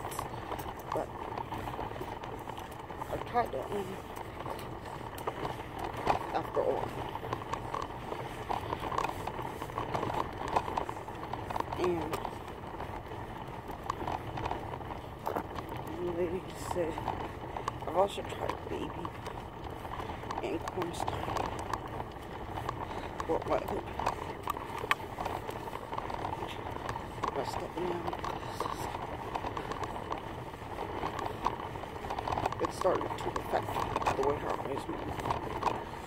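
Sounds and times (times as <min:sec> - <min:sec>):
toy stroller rattling on asphalt: 0:00.0 - 0:36.0.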